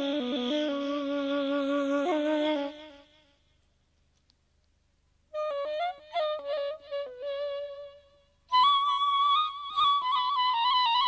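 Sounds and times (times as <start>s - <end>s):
faint recording hiss and hum: 0.0s - 11.0s.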